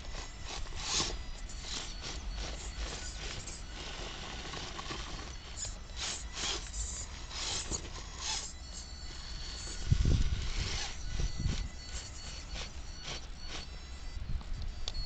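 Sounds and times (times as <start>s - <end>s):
tyres scraping and grinding on rock: 0.0s - 13.7s
thin high whine: 0.0s - 15.0s.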